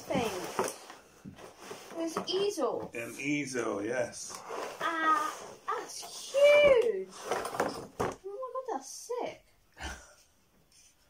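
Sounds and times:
scraping rustle from cardboard box: 0.0s - 2.8s, 4.4s - 7.9s.

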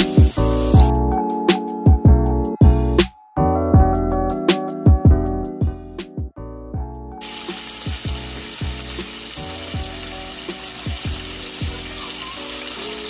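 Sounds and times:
oil sizzling in a frying pan: 0.0s - 0.9s, 7.2s - 13.0s
background music with beat: 0.0s - 13.0s.

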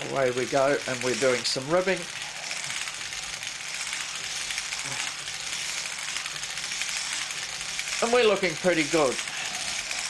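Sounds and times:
knitting machine needles clicking: 0.0s - 10.0s.

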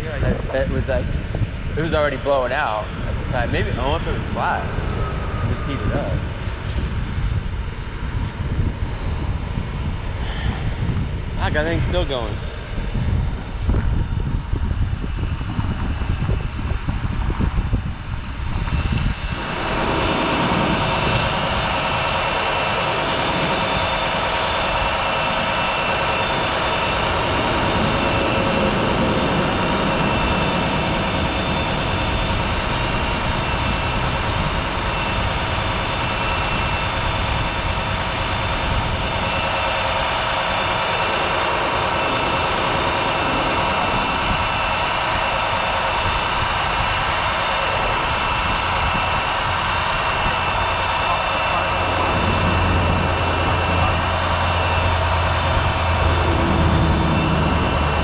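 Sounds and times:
deep hum: 0.0s - 58.0s
diesel engine droning: 0.0s - 58.0s.

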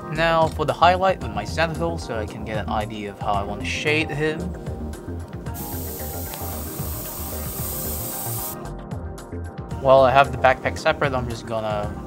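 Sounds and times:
airbrush spraying hiss: 5.6s - 8.6s.

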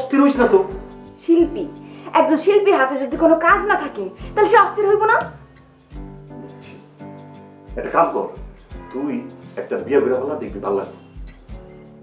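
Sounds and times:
soft background music: 0.0s - 12.0s
woman speaking: 1.2s - 5.4s.

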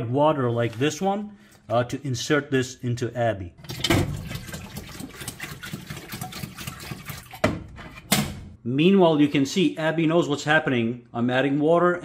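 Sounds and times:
water pouring from plastic jug: 3.6s - 7.5s
jug glugging: 3.6s - 7.6s.

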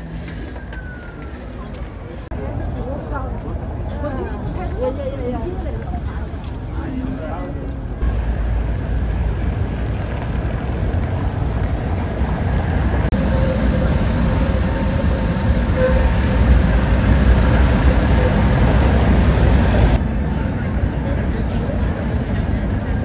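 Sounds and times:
electric tram running past: 0.0s - 23.0s
street traffic rumble: 0.0s - 23.0s
tram motor tone: 7.9s - 21.1s.

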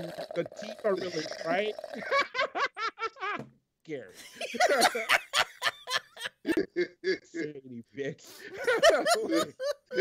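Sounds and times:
man speaking: 0.4s - 1.8s, 7.1s - 10.0s
man laughing: 2.0s - 3.4s, 4.2s - 7.6s, 8.4s - 10.0s.

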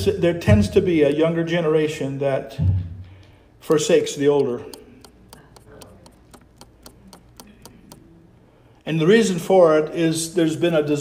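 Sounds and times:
faint even ticking: 3.7s - 8.3s.

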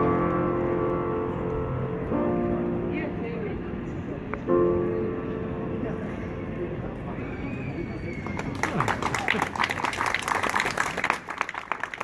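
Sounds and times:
pedestrian street background noise: 0.0s - 12.0s.

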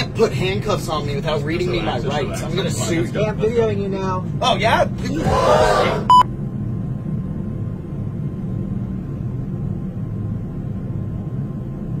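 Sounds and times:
low rumble: 3.6s - 12.0s
test-tone beep: 6.1s - 6.3s.

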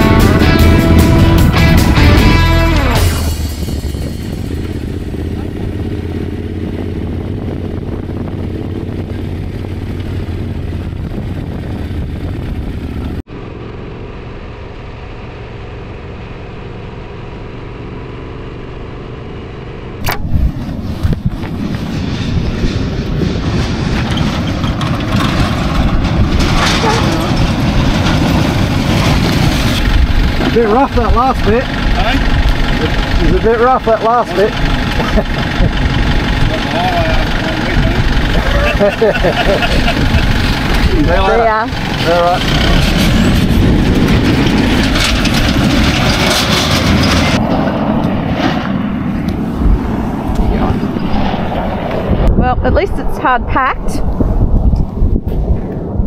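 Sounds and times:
motorcycle engine: 0.0s - 52.7s
road noise: 0.0s - 56.0s.

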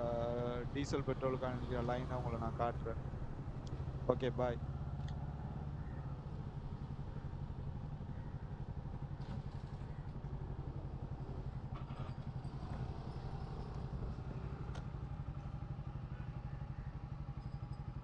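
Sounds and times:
small motorcycle engine running: 0.0s - 18.0s.

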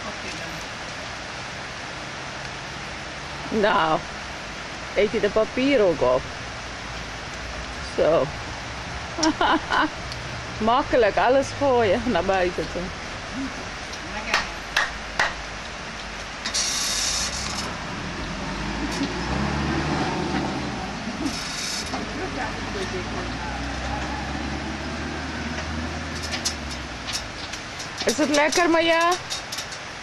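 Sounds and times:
vehicle engine rumble: 0.0s - 30.0s
sharp hand claps: 14.3s - 15.4s
high hiss bursts: 16.4s - 17.8s, 21.2s - 22.0s.

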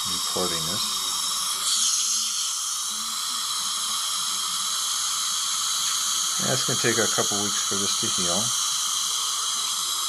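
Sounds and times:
dental suction hissing: 0.0s - 10.0s.

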